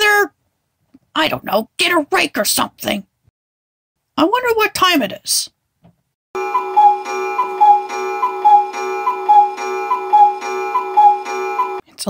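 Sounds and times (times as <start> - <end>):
steady sustained tone: 6.4 - 11.8
cartoon clock tick-tock: 6.5 - 11.8.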